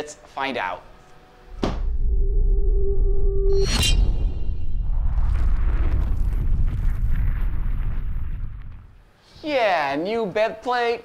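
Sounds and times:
deep sustained rumble: 1.6s - 9.0s.

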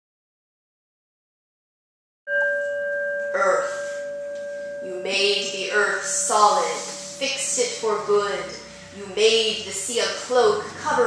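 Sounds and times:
bell ringing: 2.3s - 11.0s.

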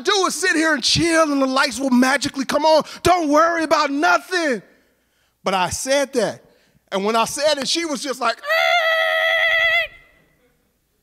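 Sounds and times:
man's falsetto cry through microphone: 8.4s - 10.2s.

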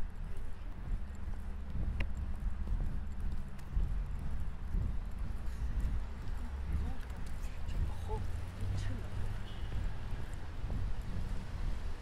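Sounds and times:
steady low hum: 0.0s - 12.0s
faint voices: 4.3s - 11.3s.

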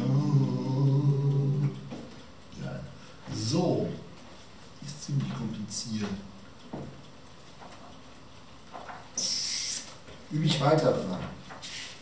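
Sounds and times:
man humming low: 0.0s - 1.9s.

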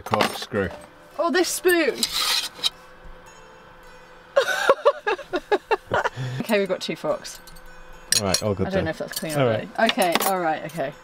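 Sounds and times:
person laughing: 4.4s - 6.4s.

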